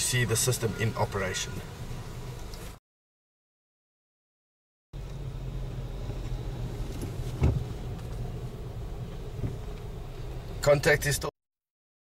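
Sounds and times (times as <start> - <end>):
car engine and road rumble: 0.0 - 2.8, 5.0 - 11.3
short thump: 6.9 - 7.8.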